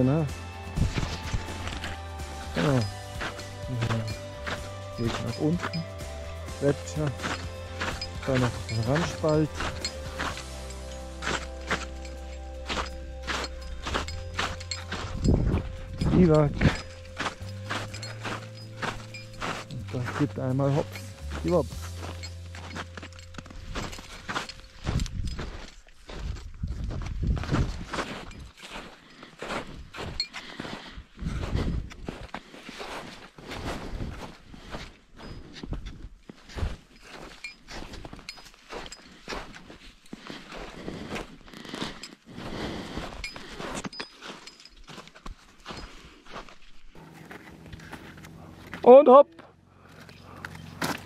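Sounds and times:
person speaking: 0:00.0 - 0:01.3, 0:02.4 - 0:10.4, 0:14.9 - 0:22.2, 0:47.0 - 0:49.6
low rumbles: 0:00.0 - 0:25.5
boots crunching on ice and snow: 0:00.0 - 0:48.9, 0:49.8 - 0:51.0.

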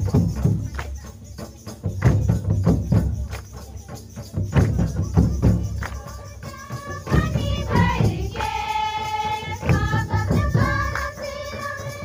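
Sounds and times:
women singing together: 0:05.6 - 0:12.0.

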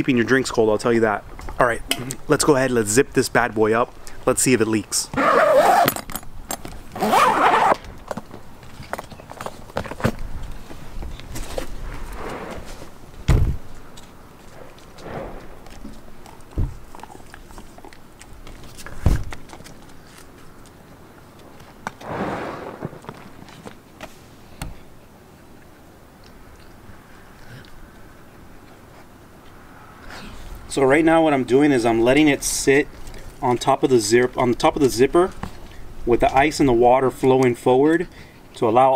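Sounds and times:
zipper rasping shut: 0:05.2 - 0:06.0, 0:07.0 - 0:07.8.

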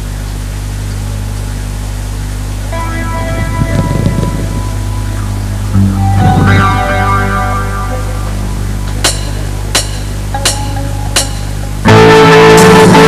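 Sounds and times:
sound system hum and hiss: 0:00.0 - 0:13.0
electric guitar chords: 0:02.3 - 0:13.0
live band playing: 0:02.7 - 0:13.0.

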